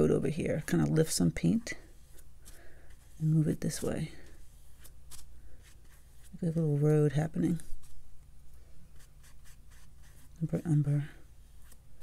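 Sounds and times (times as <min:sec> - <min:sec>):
paintbrush scratching on paper: 0:00.1 - 0:06.8, 0:08.9 - 0:11.8.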